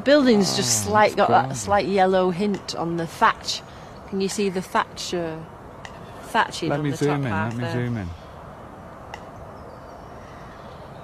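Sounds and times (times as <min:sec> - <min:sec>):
low outdoor rumble: 0:00.0 - 0:09.3.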